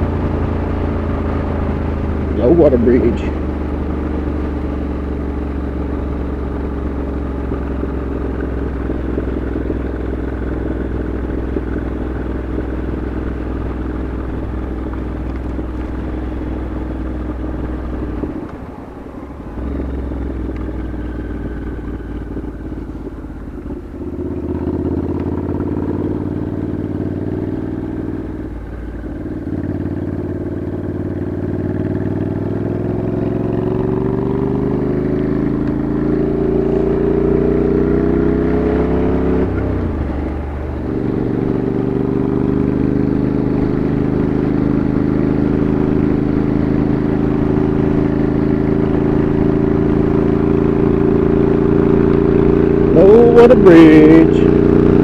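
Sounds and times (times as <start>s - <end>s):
motorcycle engine running: 0.0s - 55.0s.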